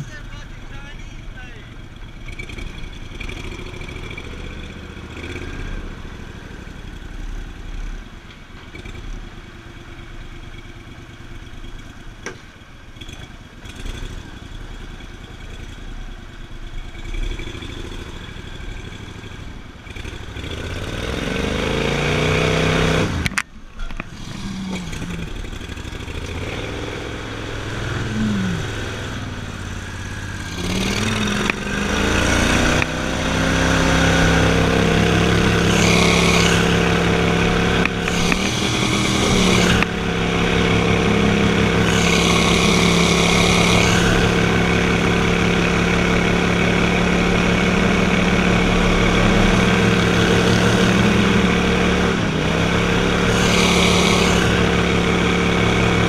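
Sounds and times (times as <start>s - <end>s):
boat motor running and revving: 2.0s - 8.0s, 17.0s - 56.0s.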